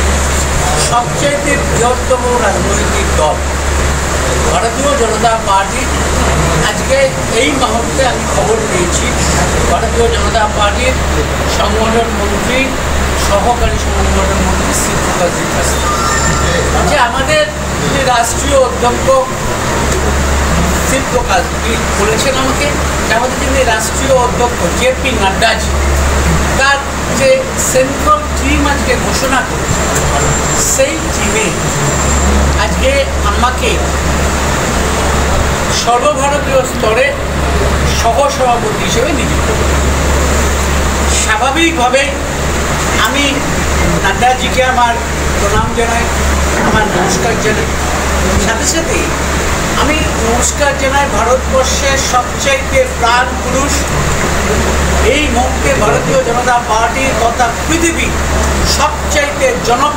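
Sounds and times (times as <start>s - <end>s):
man speaking into microphones: 0.0s - 59.9s
steady low hum: 0.0s - 59.9s.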